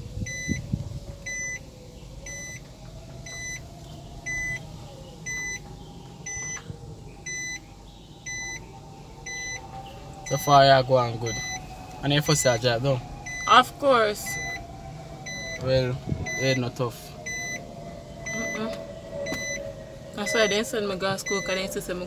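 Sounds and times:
car engine hum: 0.0 - 22.0
car warning chime beeping: 0.3 - 3.6, 4.2 - 4.6, 5.2 - 14.6, 15.2 - 19.6, 20.2 - 21.9.

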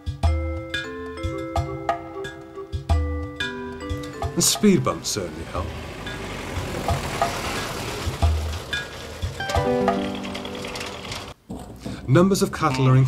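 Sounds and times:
background music sustained notes: 0.0 - 11.4
truck engine and tyre rumble: 3.8 - 11.8
truck thump over speed bump: 6.5 - 12.1.

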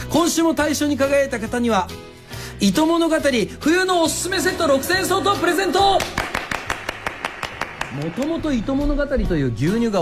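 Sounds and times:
hands clapping quickly: 5.9 - 8.7.

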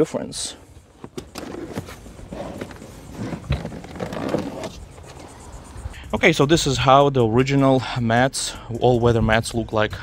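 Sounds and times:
rubber floor mat scraping: 1.0 - 5.7.

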